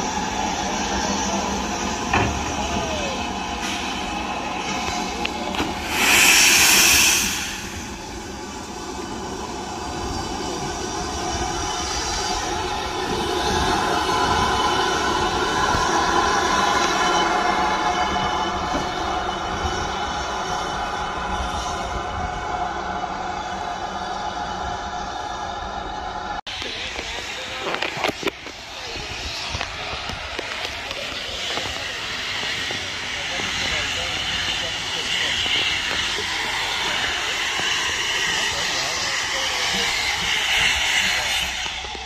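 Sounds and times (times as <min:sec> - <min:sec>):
loud steam hiss: 0:00.0 - 0:22.4, 0:26.5 - 0:42.0
steam locomotive moving slowly: 0:00.0 - 0:42.0.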